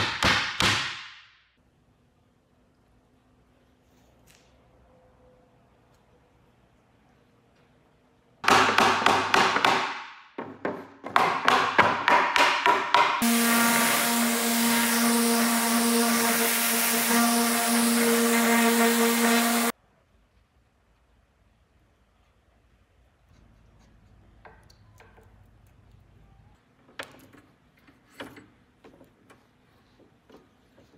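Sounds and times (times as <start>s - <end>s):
orbit sander sanding wood: 13.2s - 19.7s.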